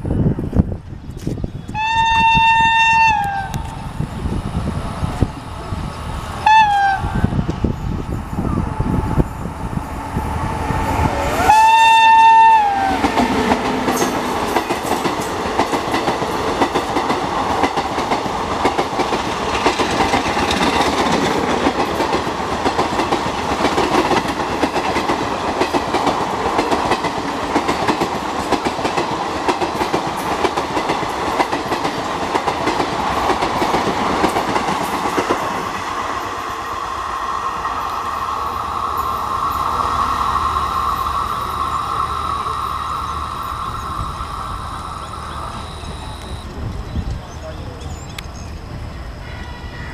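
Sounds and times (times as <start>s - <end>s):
locomotive horn: 1.8s - 3.6s, 6.4s - 7.2s, 11.3s - 14.2s, 49.2s - 49.9s
train wheels clacking over rail joints: 12.8s - 35.7s.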